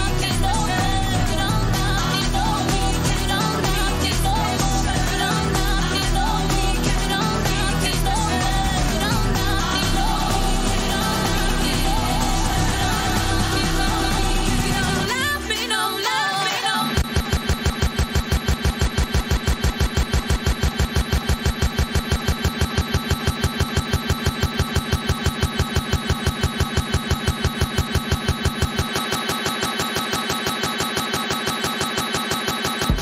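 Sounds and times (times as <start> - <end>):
electronic dance music: 0.0 - 33.0
stutter roll loop: 0.0 - 33.0.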